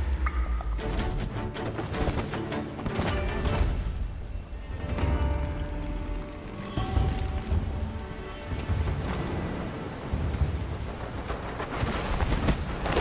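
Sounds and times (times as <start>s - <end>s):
heavy rain: 0.0s - 13.0s
sparse music score: 0.0s - 13.0s
low rumbling thunder: 8.7s - 13.0s.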